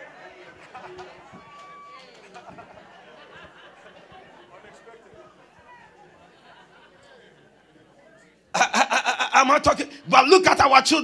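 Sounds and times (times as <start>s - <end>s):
murmur of voices: 0.0s - 11.0s
man's amplified voice: 8.6s - 11.0s.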